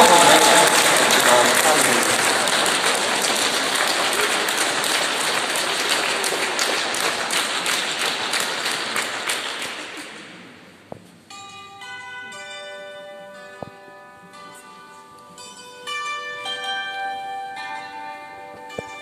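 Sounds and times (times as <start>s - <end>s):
audience applauding: 0.0s - 10.7s.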